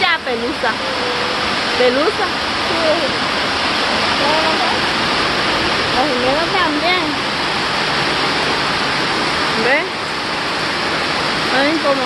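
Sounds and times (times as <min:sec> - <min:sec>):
heavy rain pouring: 0:00.0 - 0:12.0.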